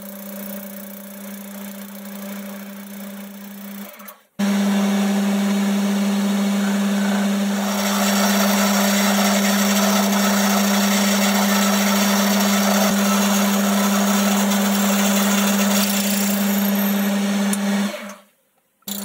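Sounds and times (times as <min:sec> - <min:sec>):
lathe humming: 0:04.4 - 0:18.1
drill cutting into metal workpiece: 0:05.4 - 0:18.2.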